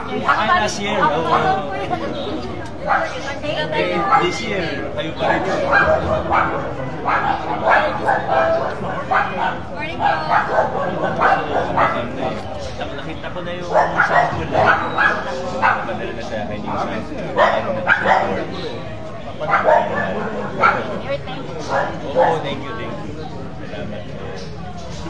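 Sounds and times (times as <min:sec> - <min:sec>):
people talking: 0:00.0 - 0:25.0.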